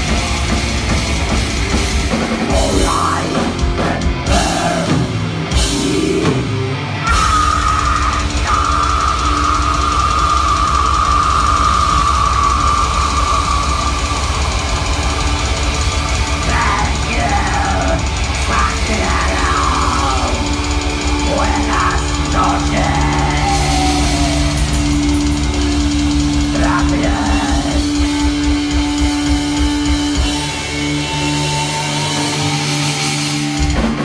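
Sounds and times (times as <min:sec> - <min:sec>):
metal band playing loud: 0:00.0 - 0:34.0.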